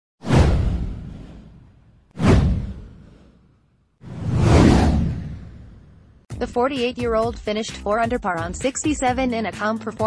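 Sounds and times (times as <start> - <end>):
deep boom: 0.2 - 3.2, 4.1 - 6.2
whoosh: 0.2 - 6.3.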